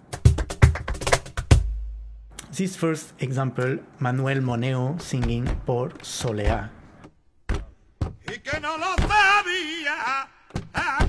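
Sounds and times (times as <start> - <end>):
drum and wood block hits: 0.0 - 2.4, 7.5 - 9.4.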